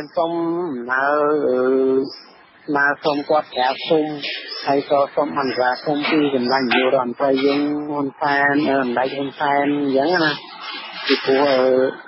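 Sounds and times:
person chanting long syllables: 0.0s - 10.4s, 11.0s - 12.0s.

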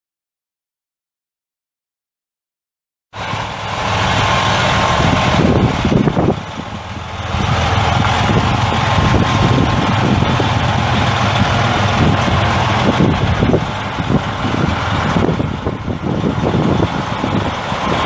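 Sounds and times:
diesel truck engine running: 3.2s - 18.0s.

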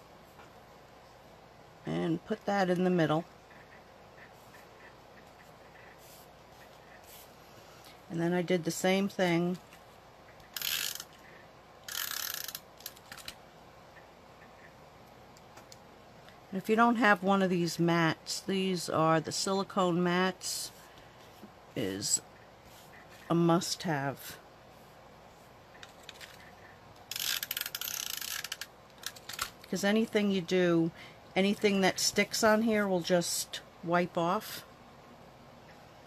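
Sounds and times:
tape dispenser ratcheting clicks: 10.5s - 11.2s, 11.9s - 13.4s, 27.1s - 29.6s.

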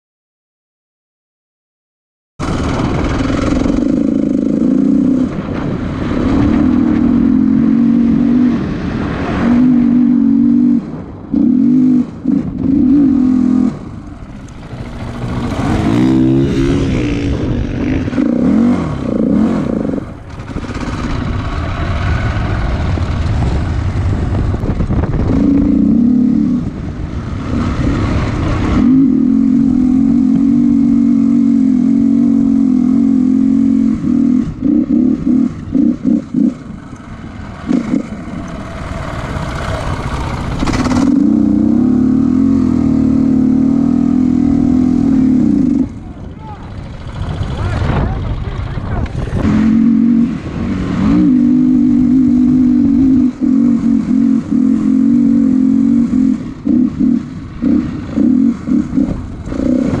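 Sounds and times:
wind rush: 2.4s - 31.3s, 43.8s - 54.6s
motorcycle engine revving: 2.4s - 60.0s.

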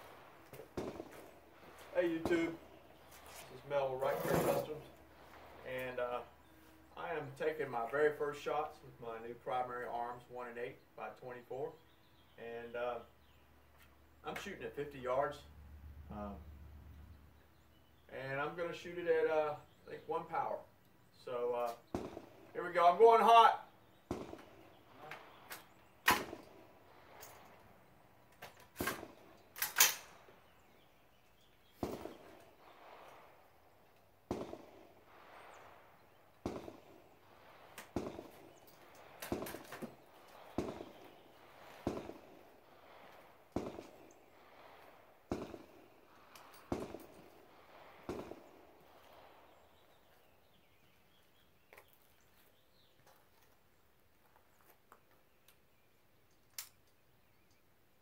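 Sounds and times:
rifle shots with echo: 0.0s - 6.5s, 21.9s - 27.9s, 28.7s - 30.8s, 31.7s - 50.8s.

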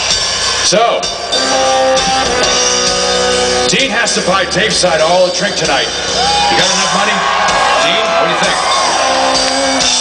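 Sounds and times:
electric guitar chords: 0.0s - 10.0s.

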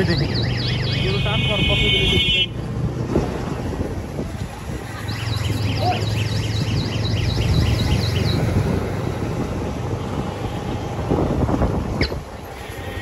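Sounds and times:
road noise: 0.0s - 13.0s
wind on microphone: 2.8s - 13.0s.

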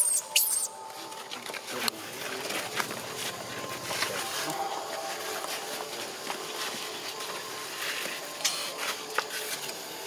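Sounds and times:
baby monkey squealing: 0.0s - 0.8s.

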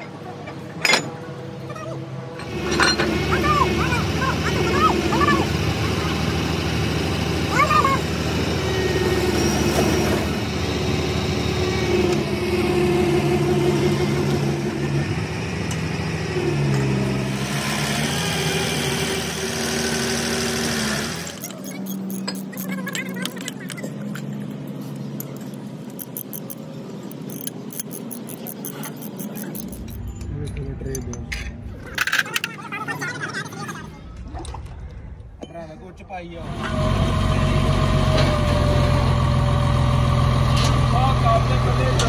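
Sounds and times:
diesel engine running: 2.4s - 30.7s, 36.4s - 42.0s
short high squeaks: 21.3s - 24.4s.

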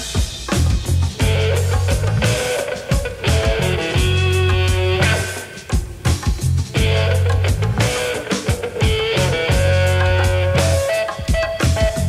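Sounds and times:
drum kit: 0.0s - 12.0s
guitar: 0.0s - 12.0s
heavy bass line: 0.0s - 12.0s.

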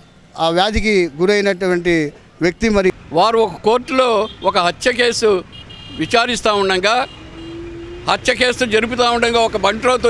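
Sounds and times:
man speaking into a microphone: 0.4s - 7.1s, 8.0s - 10.0s.

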